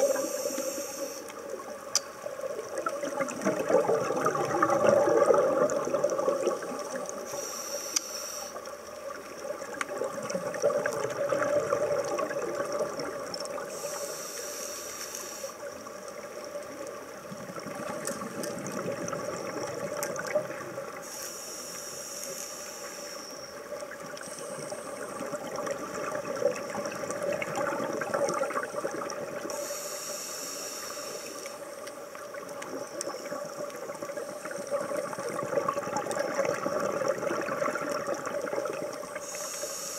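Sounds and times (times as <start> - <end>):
watery hiss: 0.0 - 1.8, 2.5 - 9.1, 11.2 - 15.9, 20.5 - 39.9
exhaled breath bubbling: 2.8 - 7.6.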